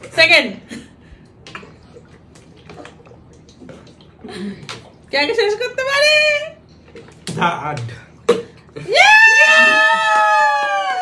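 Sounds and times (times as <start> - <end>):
gulping water from plastic bottles: 1.1 - 5.3, 6.6 - 8.9.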